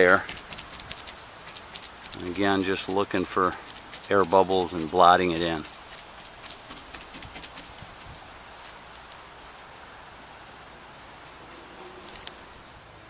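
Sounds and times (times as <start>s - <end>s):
faint hiss: 0.0s - 13.0s.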